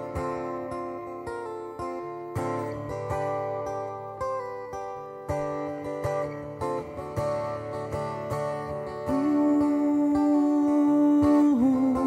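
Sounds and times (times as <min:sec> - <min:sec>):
strummed acoustic guitar: 0:00.0 - 0:12.0
man singing a long note: 0:09.1 - 0:12.0.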